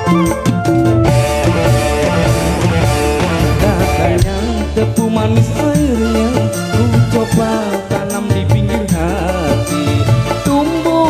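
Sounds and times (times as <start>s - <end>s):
sustained melody instruments: 0.0s - 8.4s
drum kit beat: 0.0s - 11.0s
hand drums: 0.0s - 11.0s.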